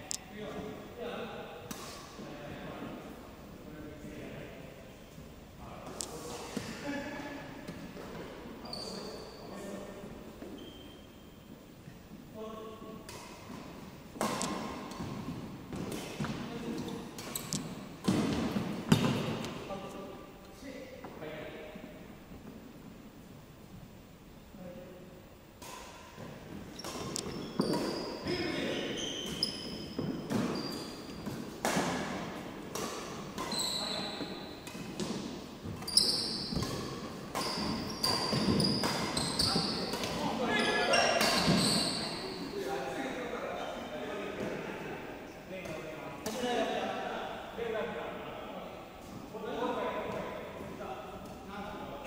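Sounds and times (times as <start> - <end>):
shoes squeaking on wooden floor: 8.6 - 9.7, 10.4 - 11.6, 26.4 - 31.4, 33.4 - 42.6
racket hitting shuttlecock: 13.0 - 16.4, 31.2 - 33.6, 36.4 - 40.2
racket striking shuttlecock: 14.2 - 15.0.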